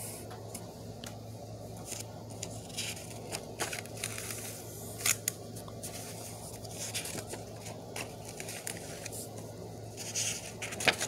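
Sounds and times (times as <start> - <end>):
paper pages rustling: 1.8 - 11.0
paper snapping: 1.9 - 5.4, 10.6 - 11.0.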